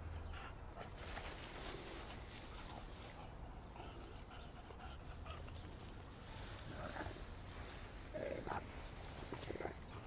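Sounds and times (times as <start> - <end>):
leaves rustling: 0.8 - 3.3, 5.9 - 9.9.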